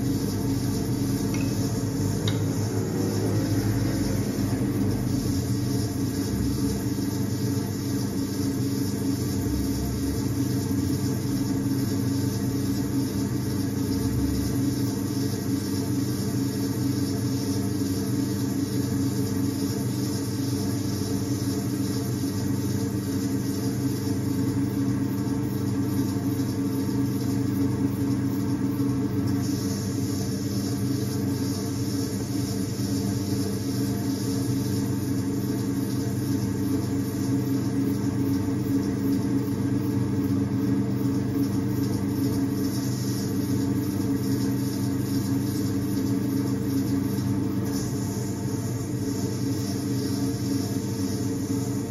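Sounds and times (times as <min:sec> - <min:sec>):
potter's wheel motor humming: 0:00.0 - 0:51.9.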